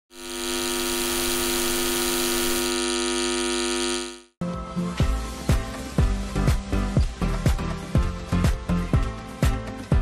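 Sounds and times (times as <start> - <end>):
electronic buzzing hum: 0.1 - 4.4.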